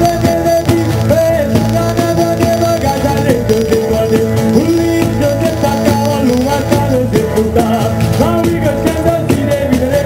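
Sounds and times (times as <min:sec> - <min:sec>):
man singing: 0:00.0 - 0:10.0
frame drum with jingles: 0:00.7 - 0:08.4.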